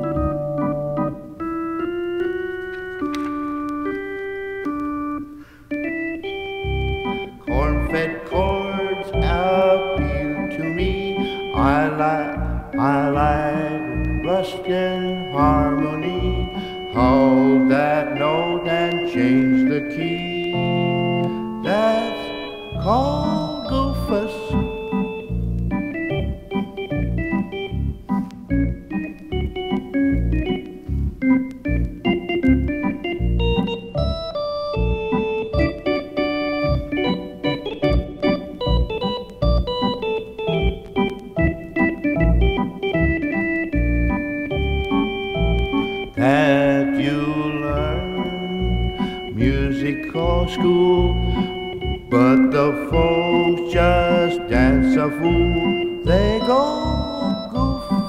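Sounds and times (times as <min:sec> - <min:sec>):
electronic organ playing: 0:00.0 - 0:58.0.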